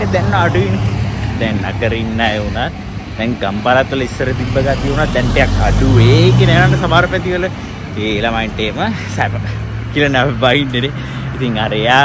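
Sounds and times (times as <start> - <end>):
man's voice: 0.0 - 12.0
van engine passing: 0.0 - 12.0.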